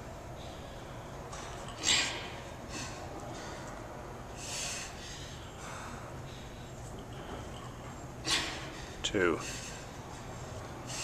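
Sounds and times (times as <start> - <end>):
woman breathing hard: 0.3 - 11.0
woman exhaling forcefully: 1.8 - 3.0, 8.2 - 8.9.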